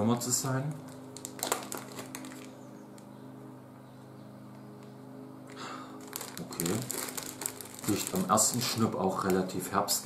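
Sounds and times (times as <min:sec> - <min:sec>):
steady low hum: 0:00.0 - 0:10.0
hissing plastic rustle: 0:06.0 - 0:09.6.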